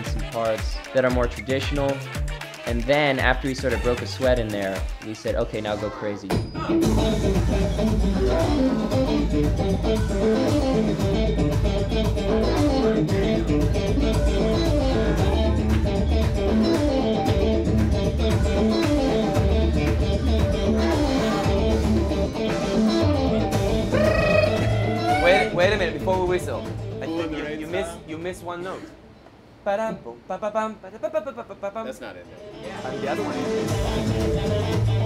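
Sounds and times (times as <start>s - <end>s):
steady beat: 0.0s - 5.6s, 6.4s - 28.4s
bass guitar line: 6.7s - 27.9s, 33.0s - 35.0s
electric guitar riff: 6.8s - 25.9s.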